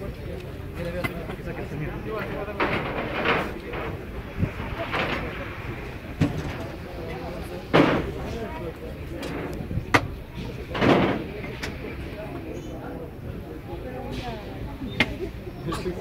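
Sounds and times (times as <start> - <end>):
indistinct voices: 0.0 - 16.0.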